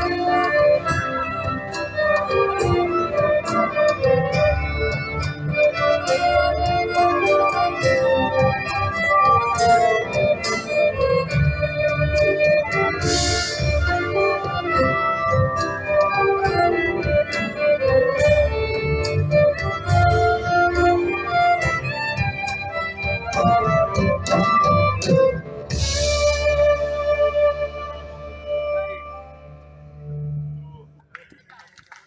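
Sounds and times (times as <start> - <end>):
violin melody: 0.0 - 30.6
folk-rock band playing: 0.0 - 30.7.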